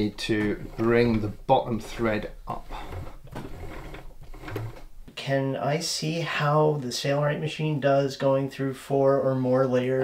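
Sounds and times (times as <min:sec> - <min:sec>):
sewing machine clicking: 0:00.0 - 0:05.1.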